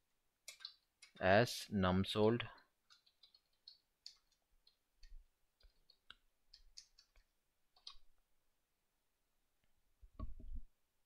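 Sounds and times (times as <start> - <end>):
faint keyboard typing clicks: 0.4 - 1.2, 2.6 - 8.1.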